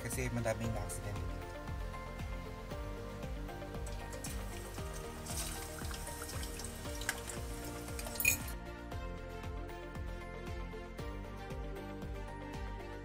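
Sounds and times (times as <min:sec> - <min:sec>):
background music with steady beat: 0:00.0 - 0:13.0
meat sizzling in hot oil: 0:03.6 - 0:08.6.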